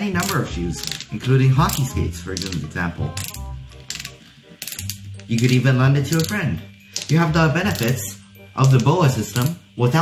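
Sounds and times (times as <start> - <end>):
lacing dial ratcheting clicks: 3.2 - 6.4.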